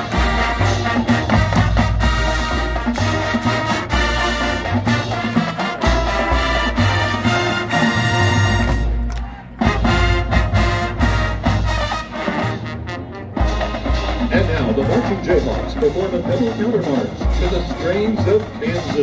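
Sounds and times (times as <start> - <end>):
marching band playing: 0.0 - 19.0.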